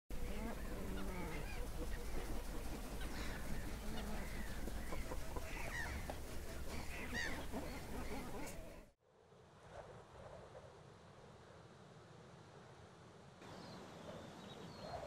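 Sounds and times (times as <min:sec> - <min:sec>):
geese honking: 0:00.1 - 0:08.9
waterbirds calling: 0:00.1 - 0:08.9.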